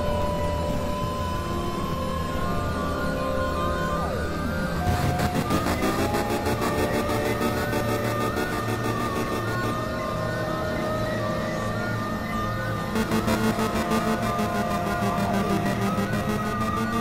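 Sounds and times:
electronic synthesizer music: 0:04.6 - 0:17.0.

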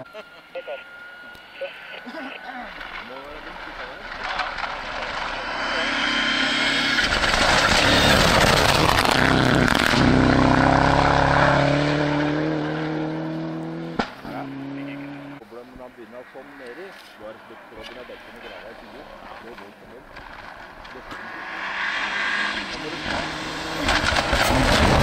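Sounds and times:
rally car passing at speed: 0:02.7 - 0:15.4, 0:17.4 - 0:25.0.

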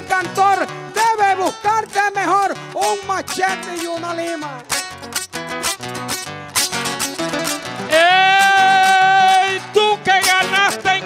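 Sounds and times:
plucked strings playing: 0:00.0 - 0:11.0.

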